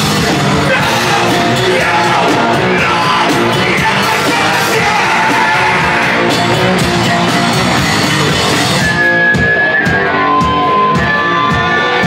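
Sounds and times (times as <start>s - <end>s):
distorted electric guitar: 0.0s - 12.0s
drums: 0.0s - 12.0s
shouted vocals: 0.5s - 6.4s.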